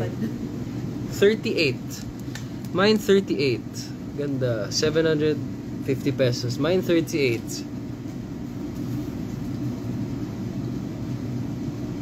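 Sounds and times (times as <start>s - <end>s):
low rumbling background noise: 0.0s - 12.0s.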